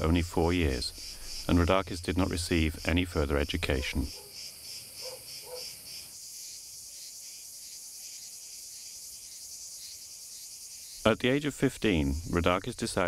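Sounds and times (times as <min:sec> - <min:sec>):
high-pitched insect chorus: 0:00.0 - 0:13.0.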